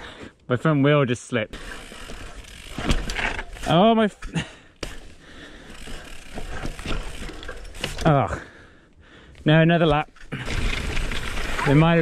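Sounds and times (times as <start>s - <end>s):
bike chain and frame rattling: 1.6s - 8.4s, 9.9s - 12.0s.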